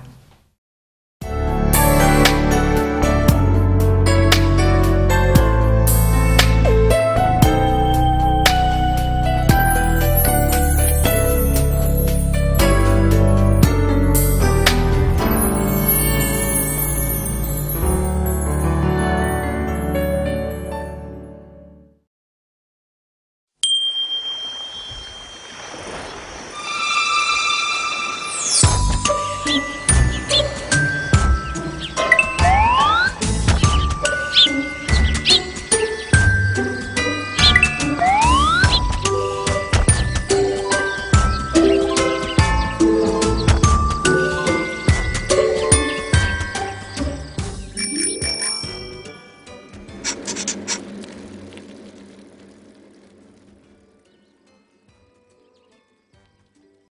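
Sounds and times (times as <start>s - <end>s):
jingly background music: 7.4s - 21.1s, 26.7s - 50.1s
high chime ringing: 15.4s - 18.6s, 23.6s - 25.8s, 44.0s - 49.7s
hissy ringing wash: 23.6s - 28.6s.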